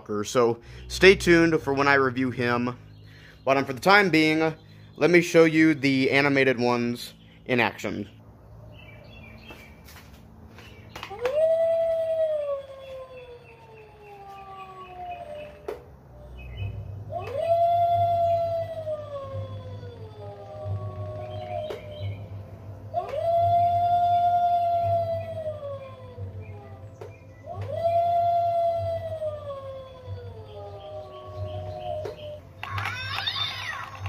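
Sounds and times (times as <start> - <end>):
low hum: 0.0 - 32.8
recorded wolf howl: 11.1 - 33.4.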